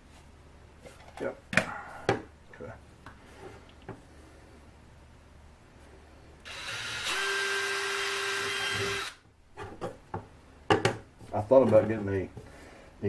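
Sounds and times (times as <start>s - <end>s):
cordless drill drilling wood: 6.4s - 9.2s.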